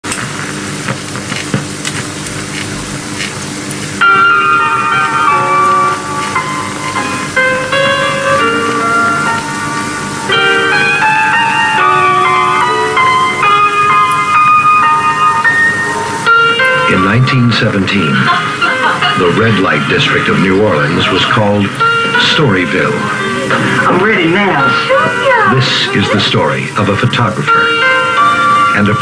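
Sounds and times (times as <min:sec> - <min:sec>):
film soundtrack hiss and hum: 0:00.0 - 0:29.0
music with clear held notes: 0:04.0 - 0:29.0.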